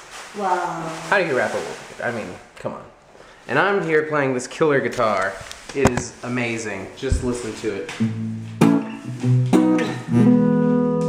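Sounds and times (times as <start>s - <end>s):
acoustic guitar strumming: 8.0s - 11.0s.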